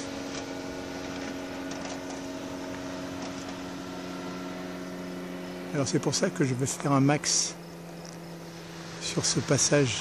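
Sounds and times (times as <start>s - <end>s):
aircraft engine drone overhead: 0.0s - 10.0s.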